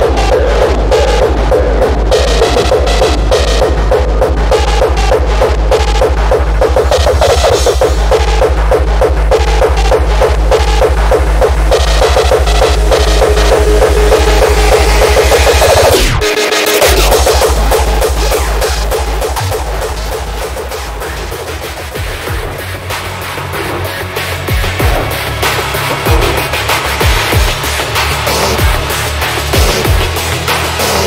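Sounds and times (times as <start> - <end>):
repeating synth riff: 0.0 - 30.4
hard kick drum pounding: 0.0 - 31.0.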